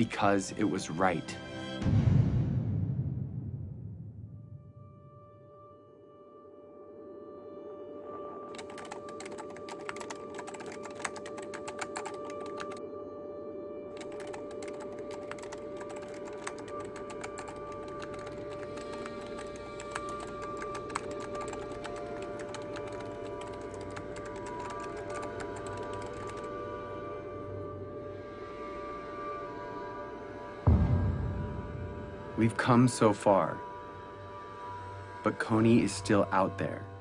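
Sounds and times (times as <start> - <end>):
background music: 0.0 - 37.0
rapid keyboard typing: 8.5 - 12.8, 13.9 - 26.6.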